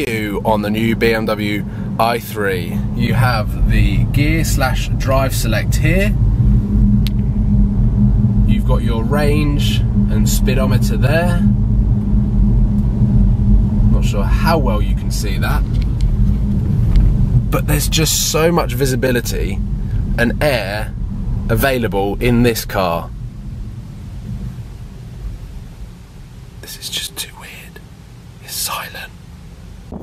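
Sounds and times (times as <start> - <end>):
road and tyre noise in car: 0.0 - 30.0
steady hum: 0.0 - 30.0.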